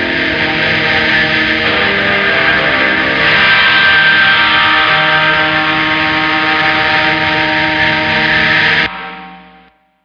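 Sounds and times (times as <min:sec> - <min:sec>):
distorted guitar chord with feedback: 0:00.0 - 0:10.0.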